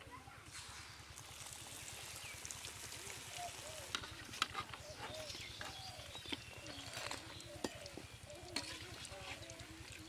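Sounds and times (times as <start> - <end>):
oil crackling while deep-frying: 0.4 - 10.0
metal spoon scraping wok: 8.6 - 9.4.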